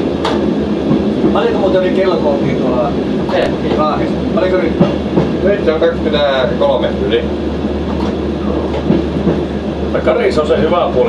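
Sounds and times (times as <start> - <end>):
low engine drone: 0.0 - 11.0
wheel-on-rail noise: 0.0 - 11.0.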